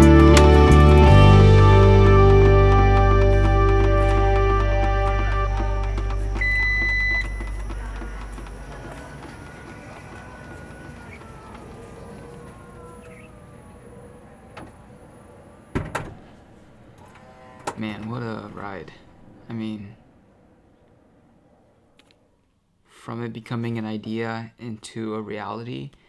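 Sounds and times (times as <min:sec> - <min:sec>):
background music: 0:00.0 - 0:09.2
liftgate motor whine: 0:00.0 - 0:22.2
short warning beep: 0:06.4 - 0:07.7.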